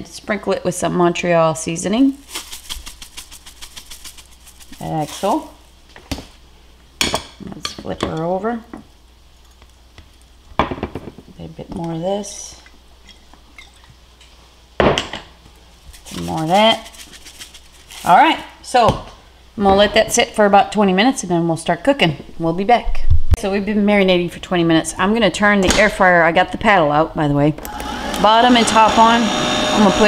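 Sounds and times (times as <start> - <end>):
spice shaker rattling: 2.2 - 5.6, 15.9 - 18.1.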